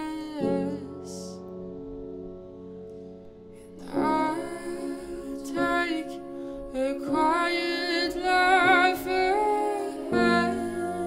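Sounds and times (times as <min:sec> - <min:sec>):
woman singing softly: 0:00.0 - 0:01.5, 0:03.6 - 0:11.0
piano accompaniment: 0:00.0 - 0:11.0.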